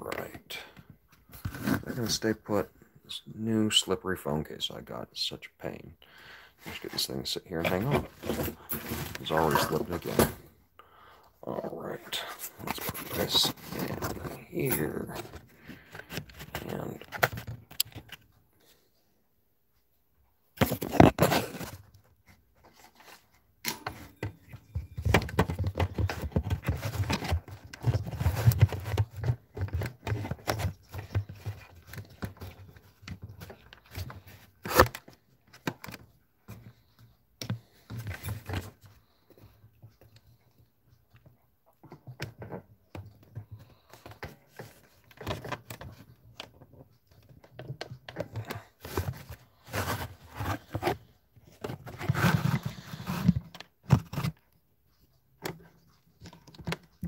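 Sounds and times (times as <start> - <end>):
phone handling rubbing and scraping: 12.1 - 18.4, 20.6 - 39.2, 41.8 - 54.4.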